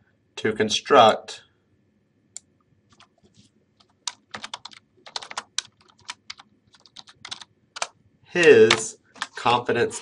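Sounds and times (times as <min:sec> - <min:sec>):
keyboard typing: 0:02.9 - 0:09.4.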